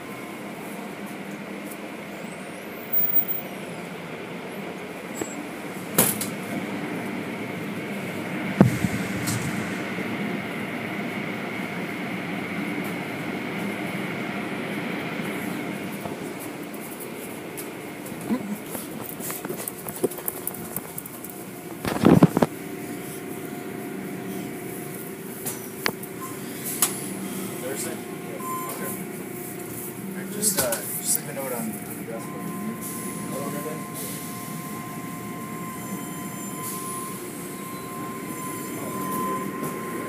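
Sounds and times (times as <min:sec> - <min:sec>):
mechanical rumble: 0:06.7 - 0:12.6
faint high whine: 0:07.4 - 0:13.9, 0:31.7 - 0:40.0
sharp knocks: 0:08.6 - 0:10.0.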